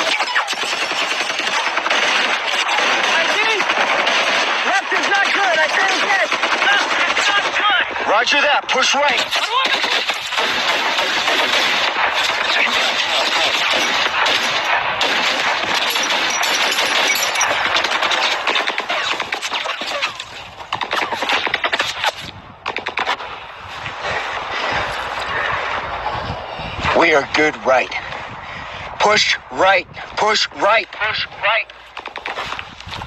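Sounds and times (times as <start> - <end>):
automatic gunfire: 0.0 - 7.8, 9.0 - 23.3.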